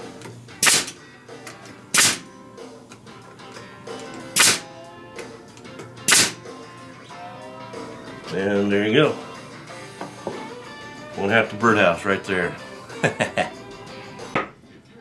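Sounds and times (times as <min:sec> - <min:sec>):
nail gun firing into wood: 0:00.6 - 0:01.0, 0:01.9 - 0:02.3, 0:04.4 - 0:04.6, 0:06.1 - 0:06.4.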